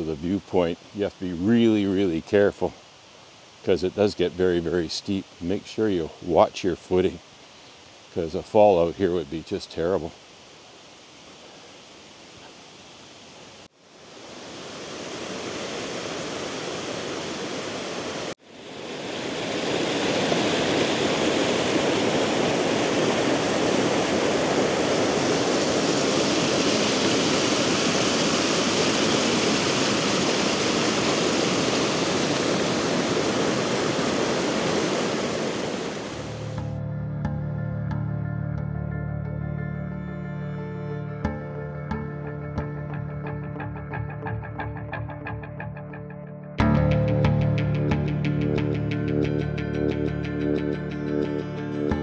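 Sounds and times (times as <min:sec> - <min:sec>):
faint steady hiss: 0:00.0 - 0:20.4
creek rushing over boulders: 0:00.0 - 0:36.5
soft background music: 0:36.4 - 0:52.0.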